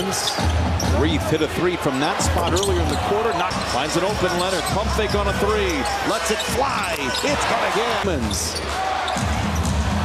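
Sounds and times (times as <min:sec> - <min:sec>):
arena crowd noise: 0:00.0 - 0:10.0
commentator speaking: 0:01.0 - 0:08.6.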